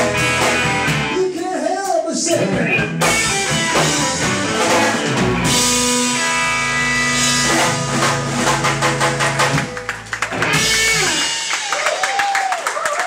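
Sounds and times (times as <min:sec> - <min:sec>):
blues-rock band playing: 0:00.0 - 0:12.2
drum and cymbal hits: 0:03.0 - 0:12.1
audience applause: 0:09.6 - 0:13.0.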